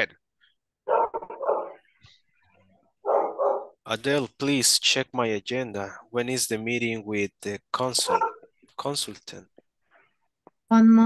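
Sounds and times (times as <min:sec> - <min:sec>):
dog barking: 0:00.9 - 0:01.8, 0:03.0 - 0:03.8, 0:08.0 - 0:08.5.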